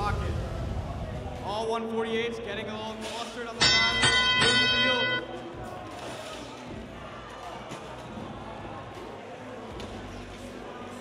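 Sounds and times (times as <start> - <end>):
hubbub of indistinct voices: 0.0 - 11.0.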